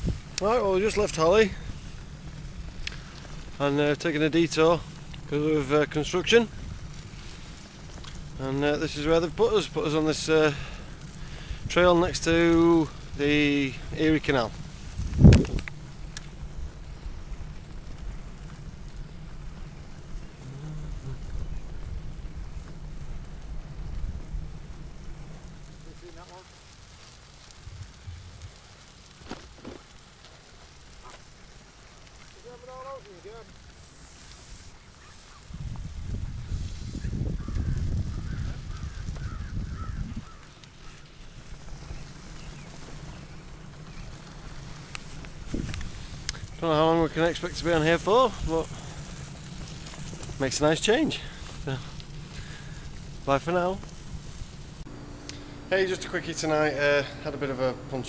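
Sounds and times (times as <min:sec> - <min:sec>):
wind rumble on microphone: 0:00.0 - 0:29.2, 0:35.0 - 0:54.9
riding noise: 0:00.0 - 0:58.0.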